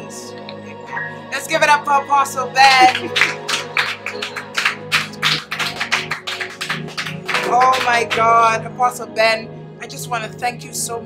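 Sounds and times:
background music low sustained tones: 0.0 - 11.0
hands clapping: 2.8 - 8.5.

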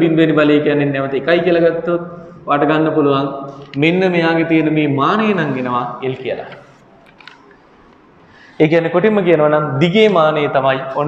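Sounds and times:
man speaking: 0.0 - 6.8, 8.6 - 11.0.

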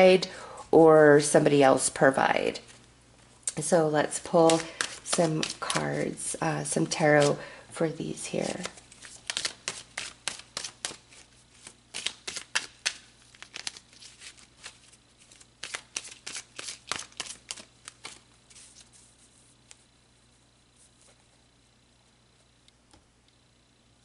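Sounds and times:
cards being shuffled: 4.2 - 6.1, 6.8 - 7.4, 8.2 - 19.9.

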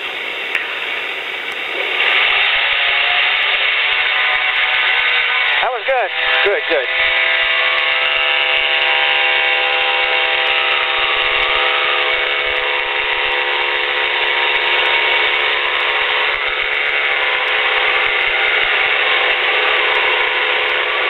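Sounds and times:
engine and propeller droning: 0.0 - 21.0.

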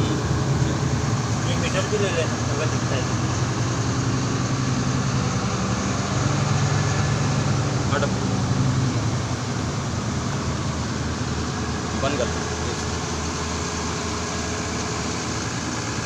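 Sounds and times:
tractor diesel engine running: 0.0 - 16.0.

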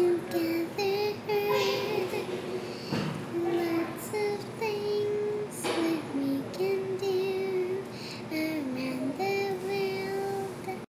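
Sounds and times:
girl singing: 0.0 - 10.9.

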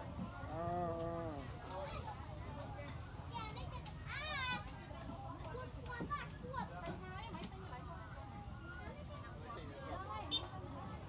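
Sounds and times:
children chattering and calling out: 0.1 - 11.0.

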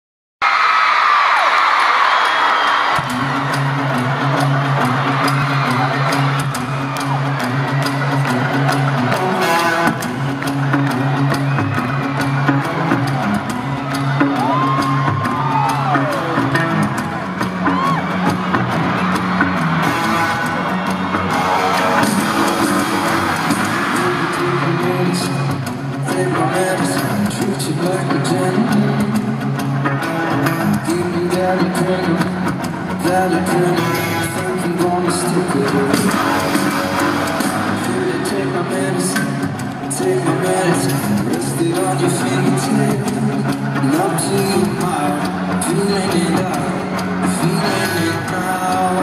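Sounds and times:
crowd screaming and cheering: 0.4 - 49.0
fans screaming and whooping: 0.4 - 49.0
live band playing: 2.8 - 49.0
electric guitar chords: 3.0 - 49.0.

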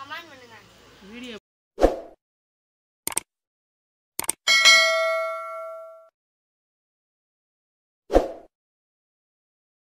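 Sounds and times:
mouse clicks: 3.1 - 3.3, 4.2 - 4.4
notification bell ding: 4.5 - 6.1.

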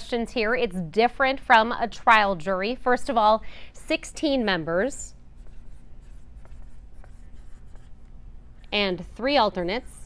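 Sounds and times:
low room hum: 0.0 - 10.0
marker scratching on whiteboard: 5.3 - 9.0.

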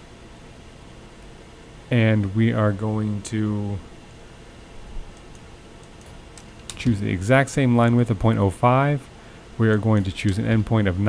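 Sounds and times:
low room hiss: 0.0 - 11.0
computer keyboard clicks: 5.2 - 7.0, 9.7 - 10.4.

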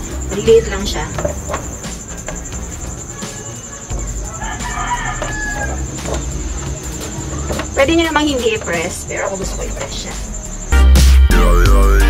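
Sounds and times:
rooster crowing: 2.3 - 7.7.

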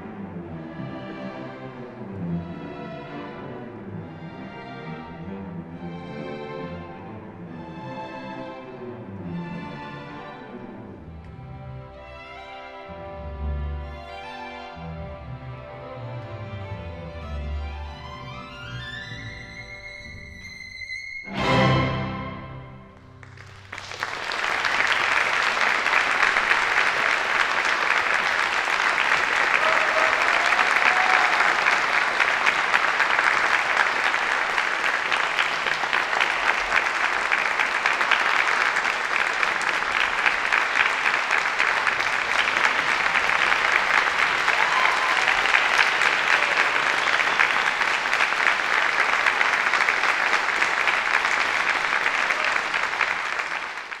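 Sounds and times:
audience applauding: 23.0 - 54.0.

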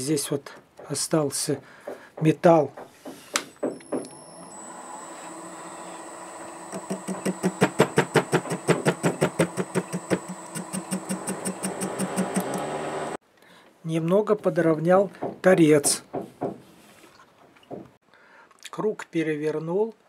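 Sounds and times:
lathe humming and whining: 3.9 - 13.2
cutting tool ticking: 5.0 - 12.7.

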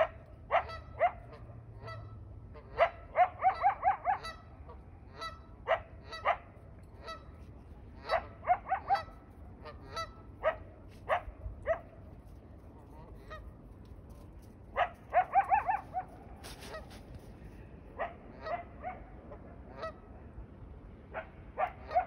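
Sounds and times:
geese honking: 0.0 - 6.4, 7.0 - 10.6, 19.7 - 20.0.

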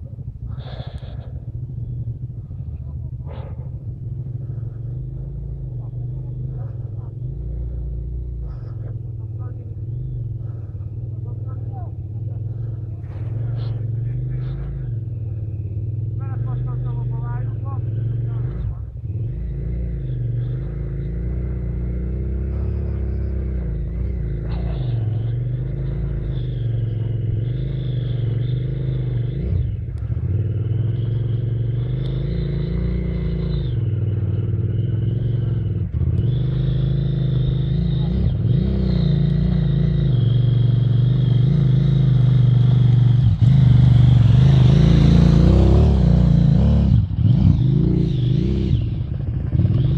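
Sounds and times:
dirt bike engines revving: 0.0 - 49.9.

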